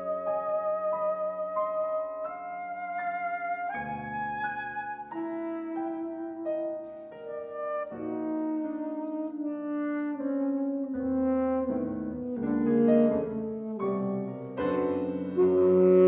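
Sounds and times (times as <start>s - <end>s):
piano accompaniment: 0.0s - 16.0s
alto saxophone held notes: 7.3s - 16.0s.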